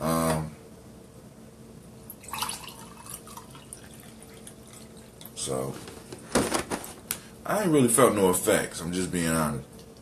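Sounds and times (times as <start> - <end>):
water pouring into a glass: 2.1 - 5.3.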